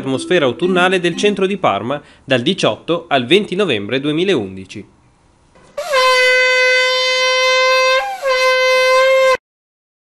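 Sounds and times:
conch shell horn blowing: 5.8 - 9.4.

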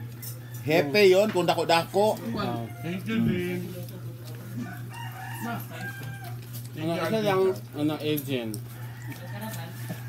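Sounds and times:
rooster crowing: 0.0 - 1.1, 2.2 - 3.4, 4.5 - 6.6, 8.7 - 10.0.

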